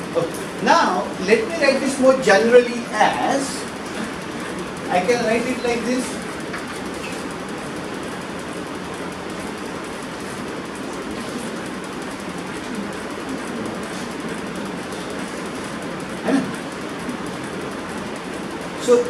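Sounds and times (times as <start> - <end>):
lecture room background noise: 0.0 - 19.0.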